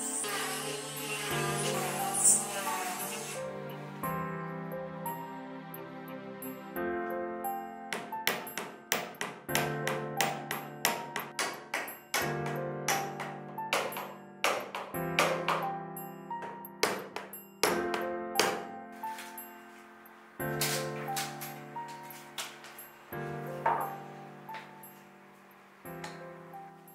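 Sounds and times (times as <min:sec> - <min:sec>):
soft background music: 0:00.0 - 0:26.9
hammer tapping nails into wood: 0:08.0 - 0:15.7.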